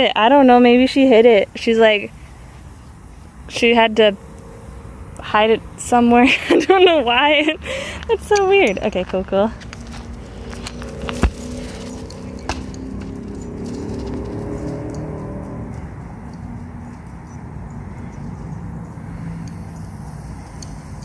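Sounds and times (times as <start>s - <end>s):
vehicle engine passing: 0.3s - 21.0s
steady low rumble: 0.8s - 21.0s.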